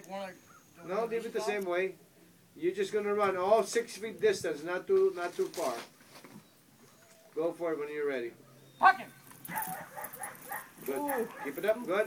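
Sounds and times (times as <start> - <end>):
dog yipping and whining: 8.5 - 11.6.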